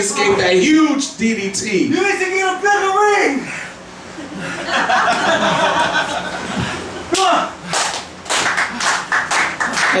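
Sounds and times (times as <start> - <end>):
rhythmic hand clapping: 7.1 - 10.0.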